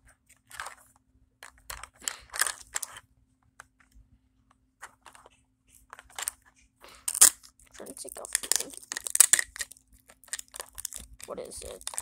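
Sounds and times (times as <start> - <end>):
plastic wrapping crinkling: 1.7 - 3.0, 4.8 - 12.0.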